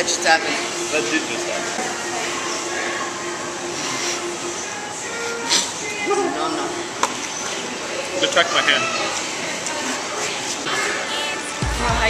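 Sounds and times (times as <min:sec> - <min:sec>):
faint music: 0:00.0 - 0:12.0
restaurant background noise: 0:00.0 - 0:12.0.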